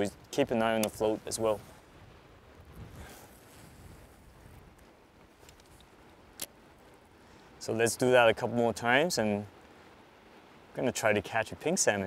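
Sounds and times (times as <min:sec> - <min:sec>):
wind on microphone: 0:00.0 - 0:04.9
flowing river water: 0:00.0 - 0:12.0.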